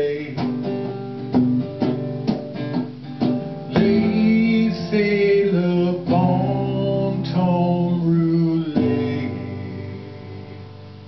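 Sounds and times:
strummed guitar chord ringing: 0.0s - 11.0s.

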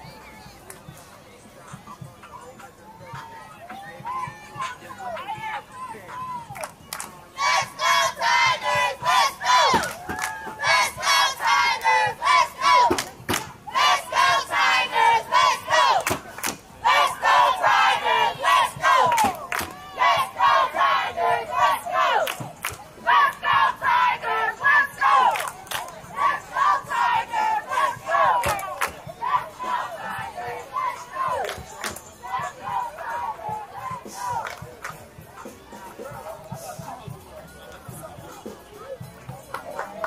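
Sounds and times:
girls shouting a cheer in unison: 16.8s - 22.3s.

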